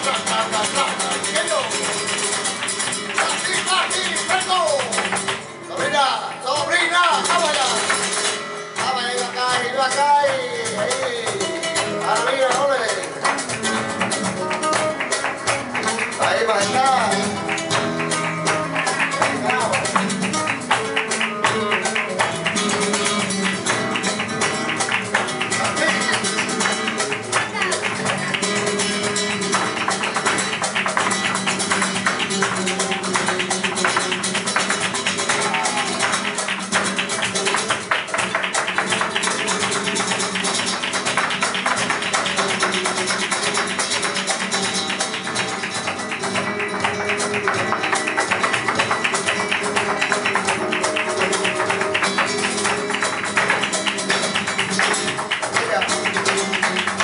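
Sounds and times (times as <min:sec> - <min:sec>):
guitar playing: 0:00.0 - 0:57.0
hand clapping: 0:00.0 - 0:57.0.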